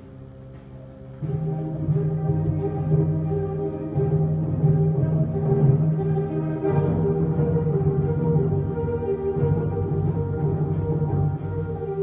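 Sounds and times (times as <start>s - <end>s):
concert band playing low chords: 0.0s - 12.0s.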